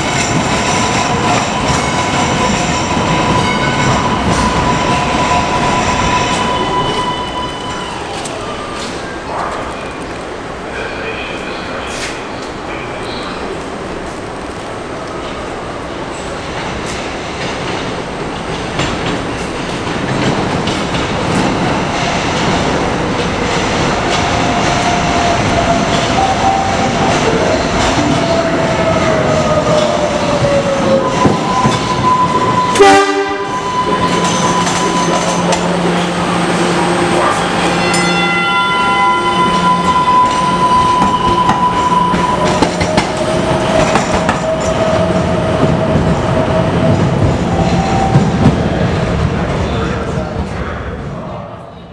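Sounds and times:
train wheels squealing: 0.8 - 8.1, 29.6 - 32.8, 33.5 - 36.3, 37.6 - 43.0.

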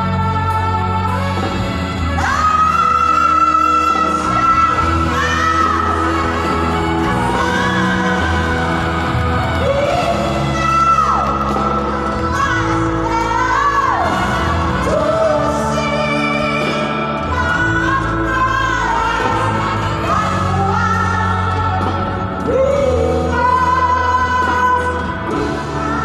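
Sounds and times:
live band playing: 0.0 - 26.0
woman singing into a microphone: 0.0 - 26.0.

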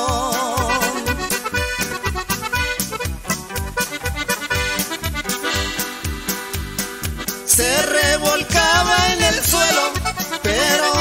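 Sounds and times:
accordion: 0.0 - 11.0
steady bass beat: 0.0 - 11.0.

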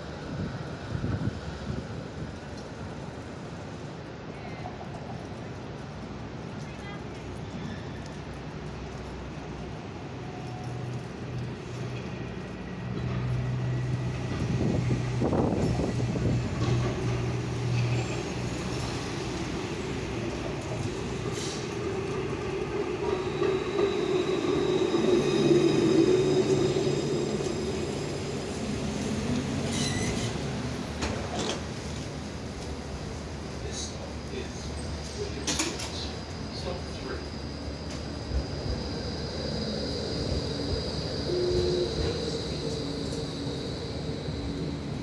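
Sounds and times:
tram running on rails: 0.0 - 45.0
high wheel squeal: 29.6 - 30.4, 35.9 - 45.0.

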